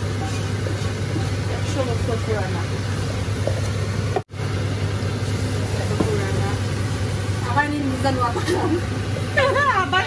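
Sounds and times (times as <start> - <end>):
kitchen background hiss: 0.0 - 10.0
steady low hum: 0.0 - 10.0.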